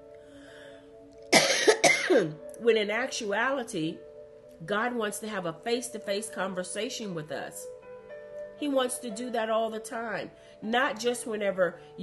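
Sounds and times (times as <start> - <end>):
faint background music: 0.0 - 12.0
woman coughing: 1.3 - 2.4.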